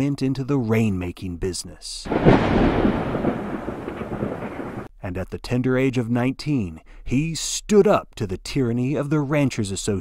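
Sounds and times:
thunder clap and rumble: 2.1s - 4.9s.

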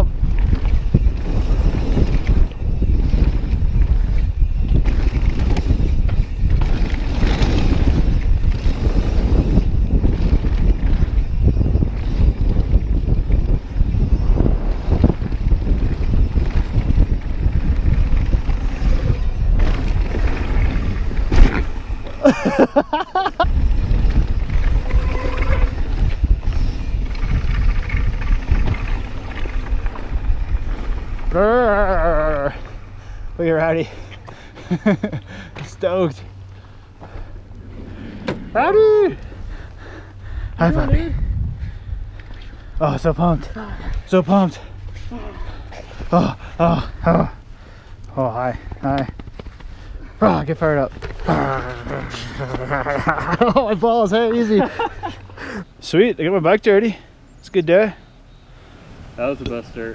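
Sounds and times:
wind buffeting microphone: 0.0s - 57.3s
tyres rumbling on dirt trail: 0.0s - 58.0s.

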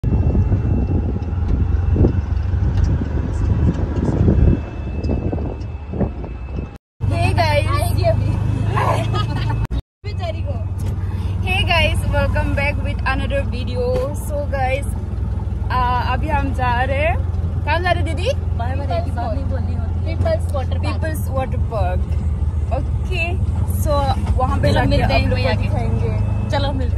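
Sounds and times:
auto-rickshaw engine rumble: 0.0s - 26.9s.

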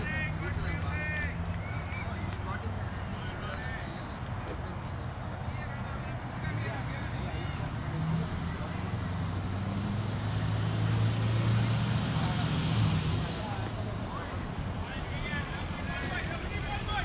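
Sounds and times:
vehicle engine passing by: 0.0s - 17.0s.

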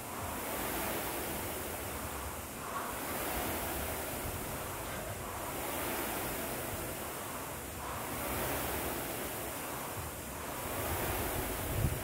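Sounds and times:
rowing machine flywheel whoosh: 0.0s - 12.0s.

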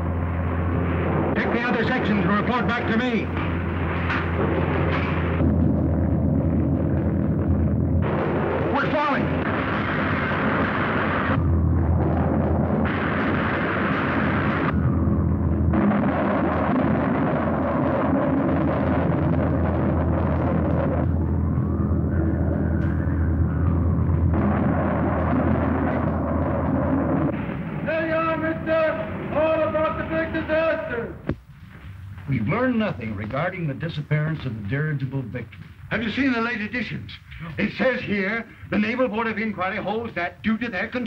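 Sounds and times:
wind roaring: 0.0s - 33.1s
deep rumble: 0.0s - 33.8s.

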